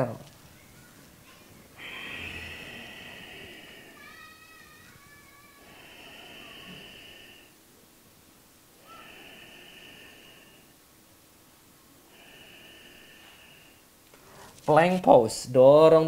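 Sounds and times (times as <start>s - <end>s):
person breathing: 1.1s - 7.8s, 8.7s - 11.0s, 12.0s - 14.7s.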